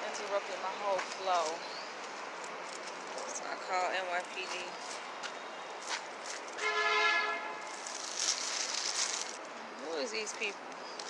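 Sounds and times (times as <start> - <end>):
outdoor background noise: 0.0 - 11.0
horn tone: 6.6 - 7.7.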